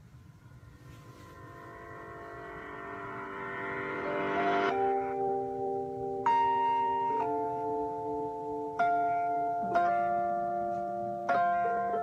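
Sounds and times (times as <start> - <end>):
sustained instrumental chord: 0.0 - 12.0.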